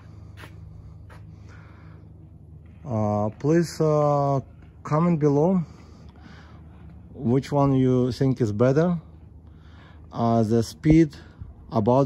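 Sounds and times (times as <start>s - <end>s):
faint short breaths: 0.0s - 2.4s, 5.7s - 7.1s, 9.4s - 10.1s
low hum: 0.0s - 12.0s.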